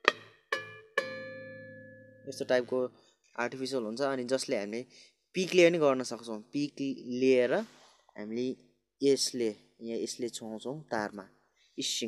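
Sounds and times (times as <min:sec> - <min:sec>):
bass guitar harmonics ringing: 0:00.0 - 0:02.8.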